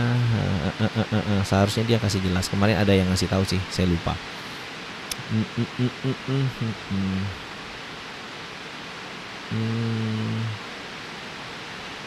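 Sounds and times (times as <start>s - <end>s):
man humming steady note: 0.0s - 1.4s, 5.1s - 7.5s, 9.5s - 10.6s
background hiss: 0.0s - 12.0s.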